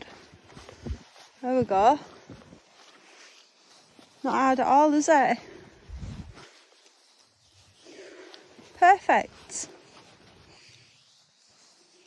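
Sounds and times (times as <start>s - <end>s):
faint low rustle: 0.0s - 12.0s.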